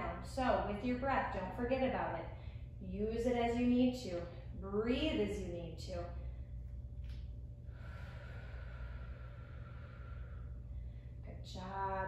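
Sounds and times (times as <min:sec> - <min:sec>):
low hum: 0:00.0 - 0:12.0
woman breathing: 0:07.6 - 0:11.3.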